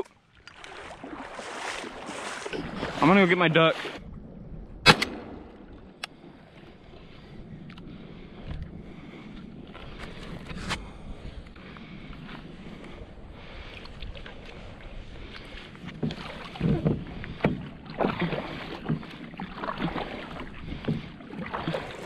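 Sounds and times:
water sloshing against kayak: 0.0s - 22.0s.

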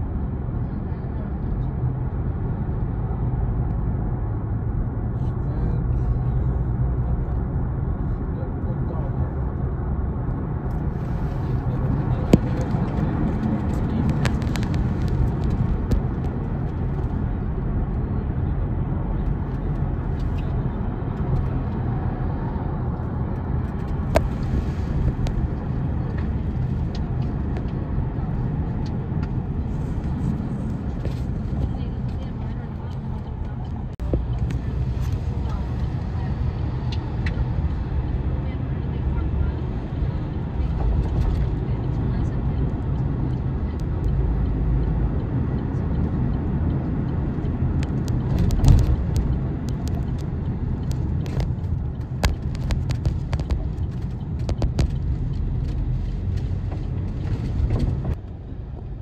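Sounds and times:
engine and tyre rumble: 0.0s - 59.0s.

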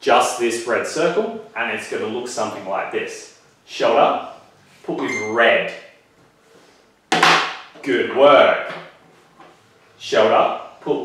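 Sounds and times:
man speaking: 4.9s - 5.9s.

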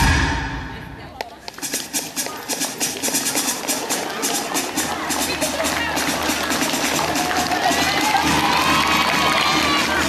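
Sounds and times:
dance music: 2.0s - 10.0s
children cheering and shouting: 7.0s - 10.0s.

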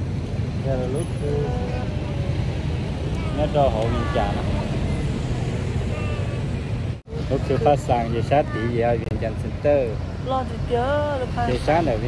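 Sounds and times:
woman speaking: 10.2s - 11.6s.

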